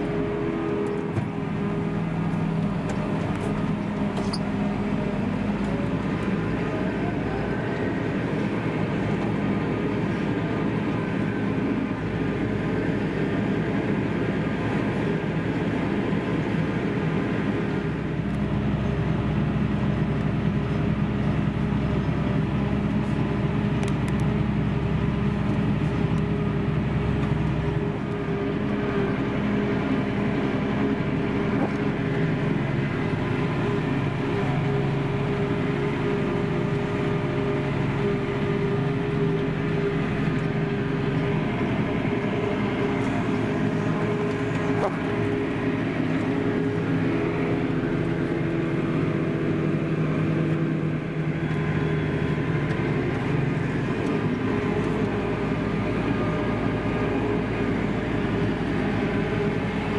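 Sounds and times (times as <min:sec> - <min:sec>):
deeper engine drone: 0:00.0 - 0:59.9
tractor diesel engine running: 0:00.0 - 0:59.9.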